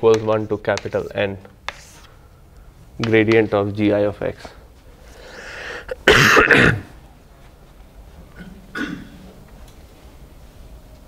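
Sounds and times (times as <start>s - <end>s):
man clearing his throat: 5.9s - 7.0s, 8.4s - 9.2s.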